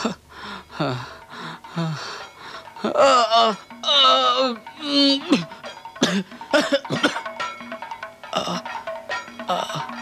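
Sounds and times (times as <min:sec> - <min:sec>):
background music: 0:00.0 - 0:10.0
man coughing harshly: 0:05.3 - 0:07.3.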